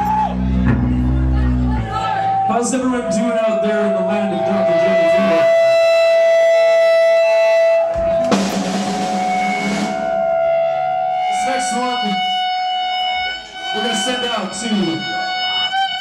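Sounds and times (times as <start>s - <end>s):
heavy metal band playing: 0.0s - 15.3s
cymbal crash: 8.1s - 10.3s.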